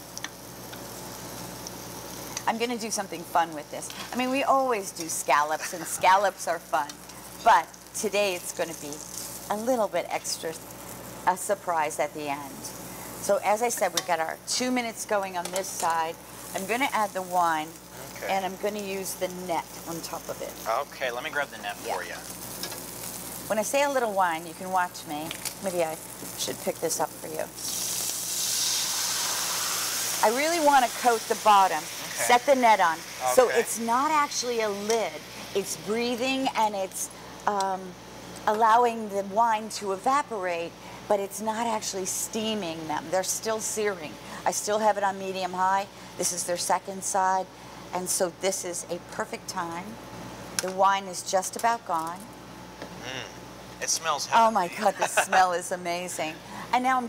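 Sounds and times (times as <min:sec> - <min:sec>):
scallops sizzling in a pan: 0:00.0 - 0:48.2.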